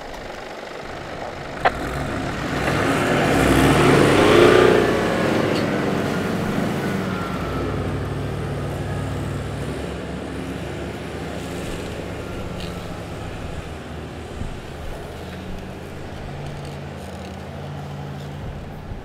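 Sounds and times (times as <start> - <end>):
engines revving hard: 0.0 - 19.0.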